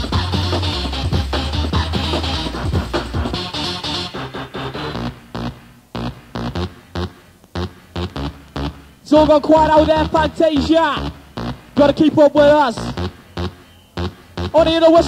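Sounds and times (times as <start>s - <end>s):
hardcore rave music: 0.0s - 15.0s.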